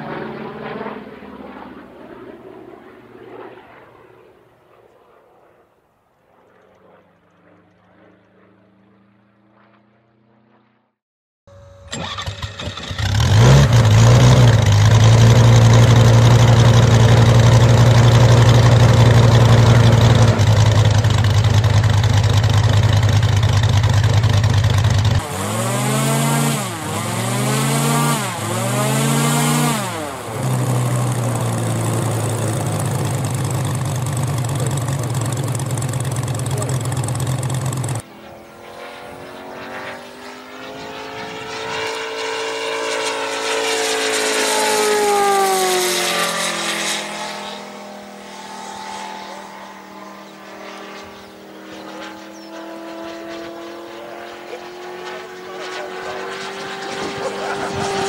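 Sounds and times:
model aircraft engine running: 0.0s - 10.8s, 11.5s - 58.0s.

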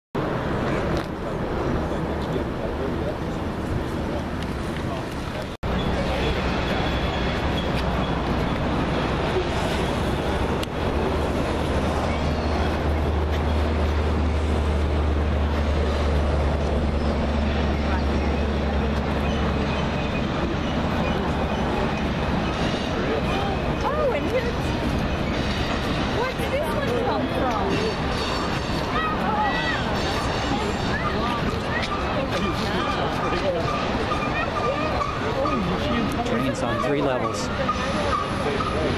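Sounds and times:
freight train diesel rumble: 0.2s - 38.9s
outdoor background noise: 0.2s - 38.9s
people chattering: 0.2s - 38.9s.

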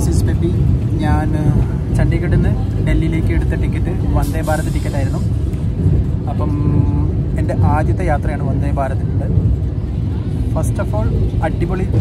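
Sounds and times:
electric train rumble: 0.0s - 12.0s.

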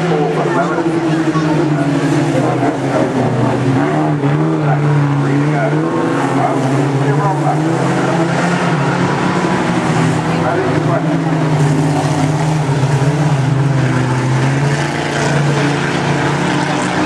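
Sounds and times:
race car engines revving: 0.0s - 17.0s.

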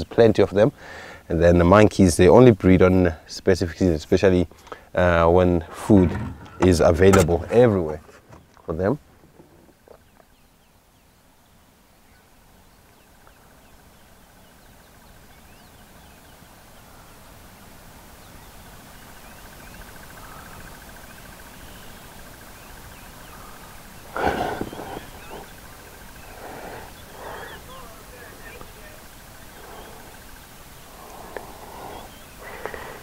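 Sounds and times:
loud animal call: 23.3s - 33.0s.

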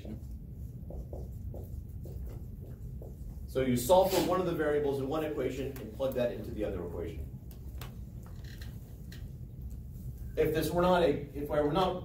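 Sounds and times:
low room hum: 0.0s - 12.0s
marker scratching on whiteboard: 0.1s - 4.4s.

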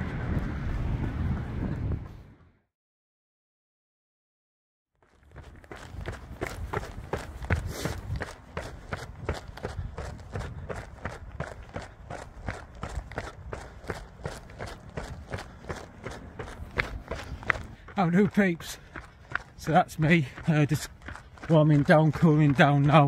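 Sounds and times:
low rumble of wind or traffic: 0.0s - 2.6s, 5.2s - 23.0s
running footsteps on pavement: 5.0s - 23.0s.

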